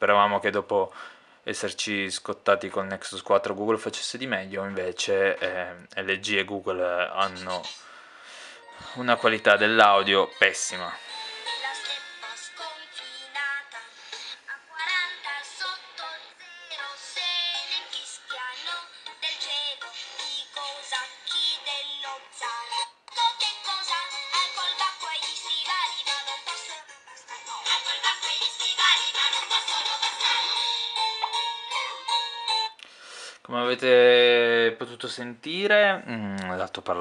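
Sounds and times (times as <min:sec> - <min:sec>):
children's song from small speaker: 0:08.8 - 0:32.8.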